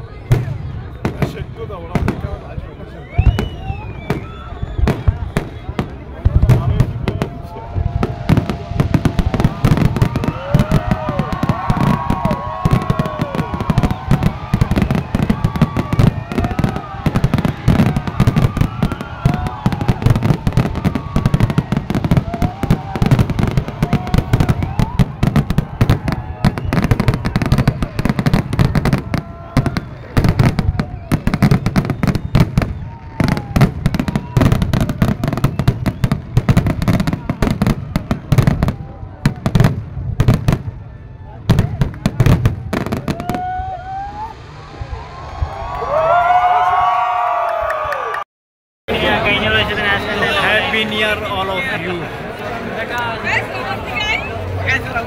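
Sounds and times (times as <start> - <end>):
people's voices: 0.0 - 36.1, 48.9 - 55.0
fireworks bursting and crackling: 0.1 - 46.9.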